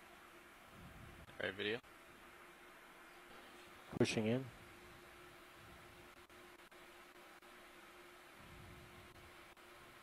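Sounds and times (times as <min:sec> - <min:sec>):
faint steady hiss: 0:00.0 - 0:10.0
low steady hum: 0:00.0 - 0:10.0.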